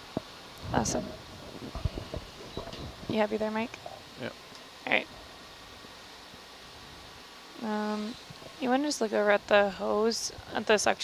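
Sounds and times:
low background hiss: 0.0s - 11.0s.

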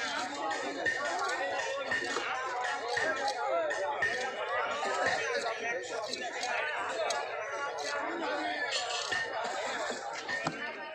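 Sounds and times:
people chattering: 0.0s - 10.9s.

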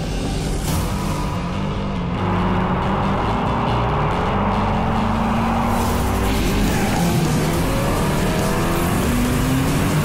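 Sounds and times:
car engine droning: 0.6s - 10.0s.

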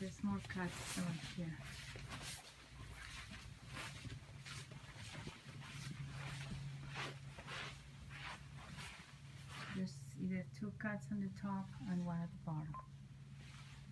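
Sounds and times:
low steady hum: 0.0s - 13.9s
rustling swishes: 0.1s - 10.0s.

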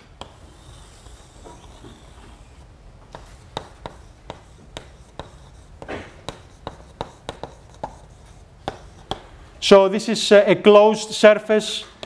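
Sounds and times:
chalk tapping on blackboard: 0.0s - 9.3s.

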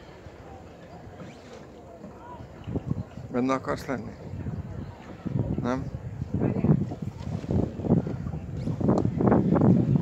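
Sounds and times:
faint distant voices: 0.0s - 10.0s
wind rumble on microphone: 0.0s - 10.0s.

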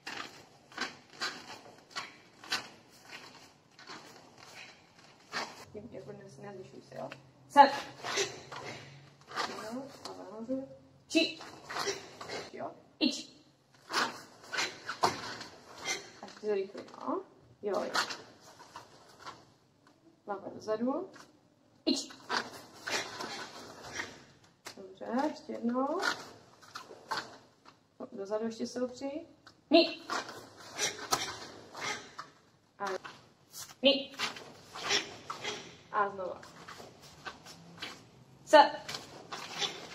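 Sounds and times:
forceful breathing: 0.0s - 5.7s, 7.6s - 9.8s.

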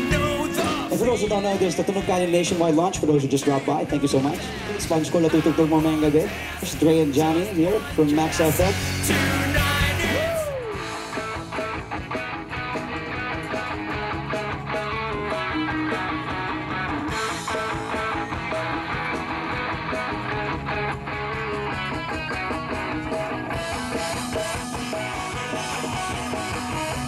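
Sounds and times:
drums steady beat: 0.0s - 27.0s
rock band playing: 0.0s - 27.0s.

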